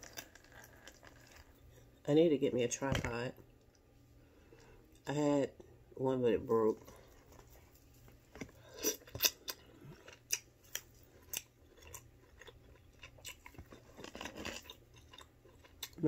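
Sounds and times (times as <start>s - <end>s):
chewing and lip smacks: 8.4s - 16.0s.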